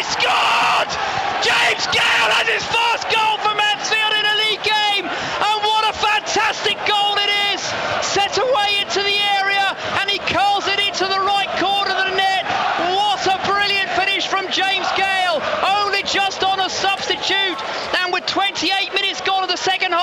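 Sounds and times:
man shouting excitedly: 0:00.0 - 0:20.0
stadium crowd noise: 0:00.0 - 0:20.0.

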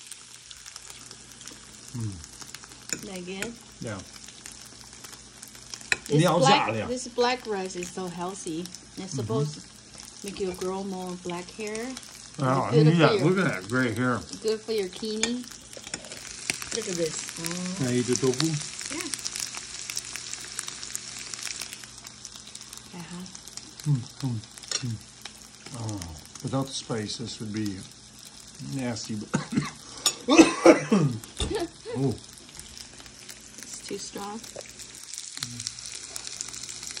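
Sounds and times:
meat sizzling in hot oil: 0:00.0 - 0:37.0.

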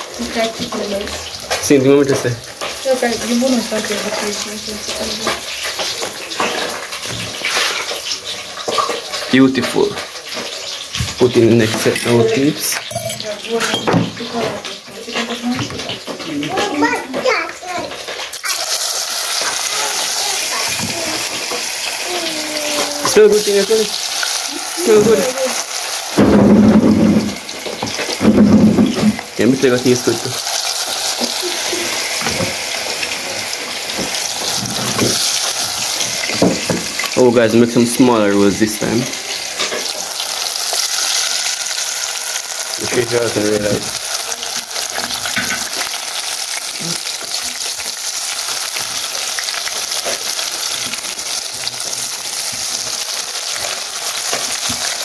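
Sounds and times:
hot oil sizzling: 0:00.0 - 0:55.0.

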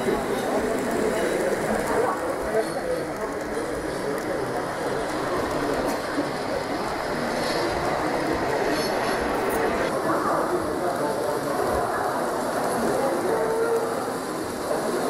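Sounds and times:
model train running on track: 0:00.0 - 0:15.0
murmur of exhibition hall: 0:00.0 - 0:15.0.

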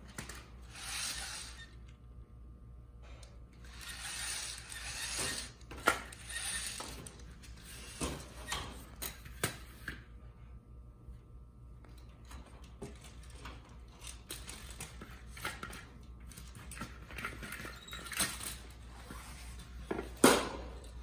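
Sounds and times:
robot frame scraping and rattling: 0:00.6 - 0:01.8, 0:03.6 - 0:08.0.

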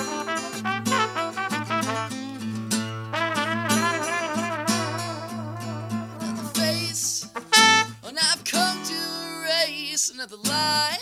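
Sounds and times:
trumpet: 0:00.0 - 0:02.5, 0:03.1 - 0:08.1
acoustic guitar: 0:00.0 - 0:11.0
man singing: 0:04.8 - 0:11.0.

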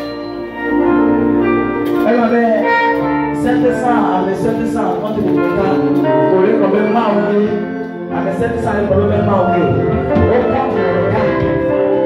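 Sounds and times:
held keyboard chords: 0:00.0 - 0:12.0
worship band music: 0:00.0 - 0:12.0
man's voice through microphone: 0:02.0 - 0:12.0.

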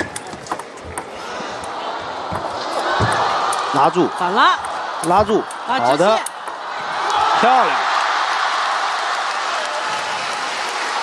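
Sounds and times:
crowd applauding: 0:01.5 - 0:11.0.

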